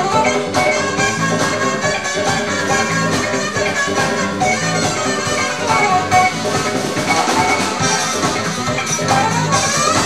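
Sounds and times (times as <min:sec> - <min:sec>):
live band music: 0:00.0 - 0:10.0
saxophone playing: 0:00.0 - 0:10.0.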